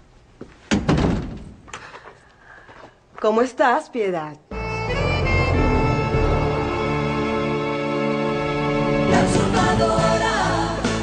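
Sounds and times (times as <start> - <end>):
door thud: 0.7 - 1.5.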